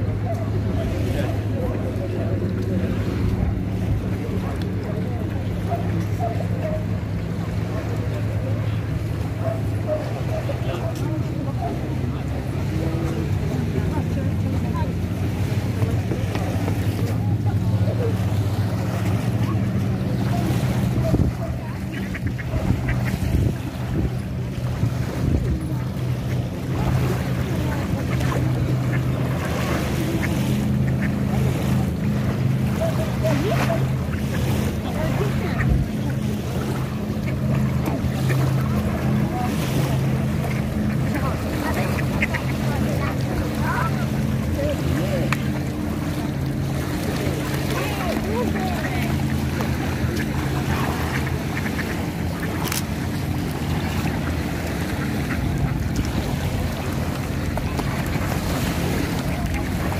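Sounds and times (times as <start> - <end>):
small waves lapping on sand: 0.0 - 59.9
steady low motor hum: 0.0 - 59.9.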